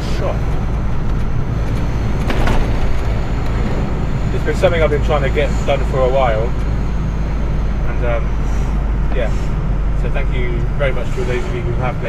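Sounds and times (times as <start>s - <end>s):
lorry engine drone: 0.0s - 12.0s.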